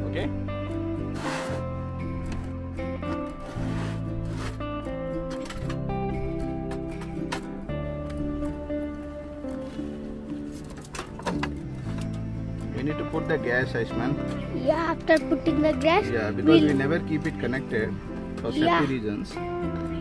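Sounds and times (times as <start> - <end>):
background music sustained notes: 0.0 - 20.0.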